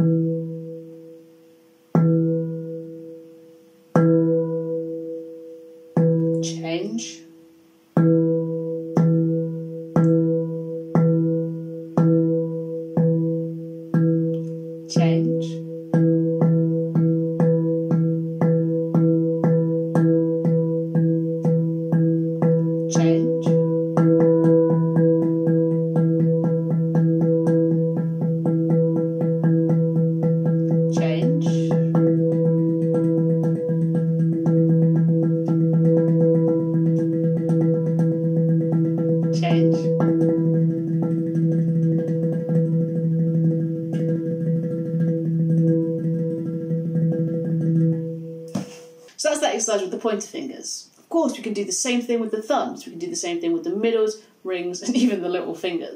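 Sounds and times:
handpan strokes: 0.0 - 49.6.

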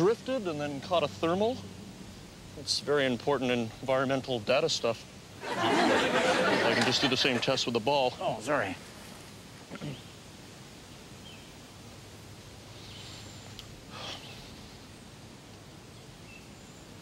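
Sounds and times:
low steady outdoor hiss: 0.0 - 17.0.

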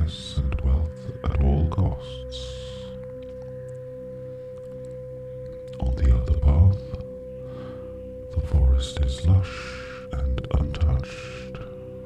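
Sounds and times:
faint low hum: 0.0 - 3.8, 4.7 - 12.0
held pure tone: 0.0 - 12.0.

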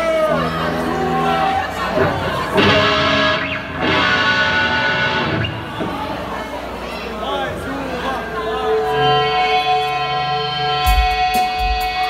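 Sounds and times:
live rock electric guitars: 0.0 - 12.0.

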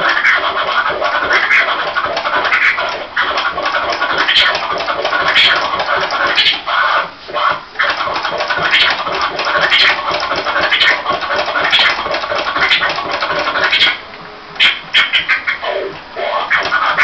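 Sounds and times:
turntable scratching: 0.0 - 17.0.

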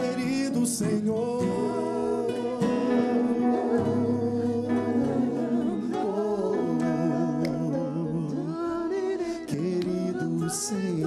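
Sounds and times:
acoustic guitars: 0.0 - 11.0
voices singing long notes: 0.0 - 11.0.

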